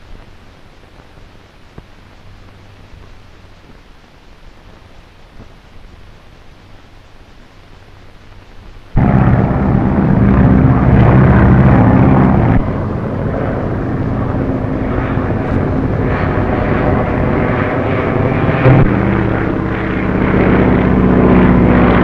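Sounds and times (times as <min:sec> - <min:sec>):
propeller aircraft engine: 0:09.0 - 0:22.0.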